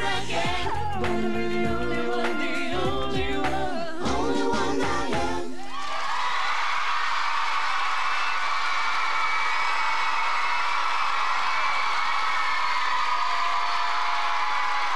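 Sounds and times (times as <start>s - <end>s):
high-pitched cheers: 5.6s - 14.9s
audience clapping: 5.7s - 14.9s.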